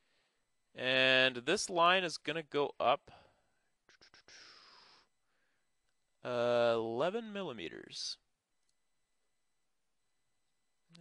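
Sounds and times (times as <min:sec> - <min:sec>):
soft breathy hiss: 0:03.0 - 0:05.7.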